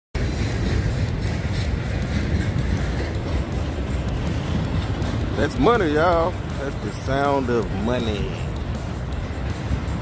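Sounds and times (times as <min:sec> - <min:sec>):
freight train wagons rolling: 0:00.2 - 0:10.0.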